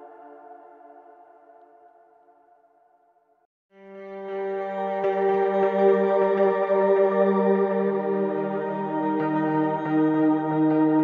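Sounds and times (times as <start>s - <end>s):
synthesizer pad chord: 0.0s - 2.6s.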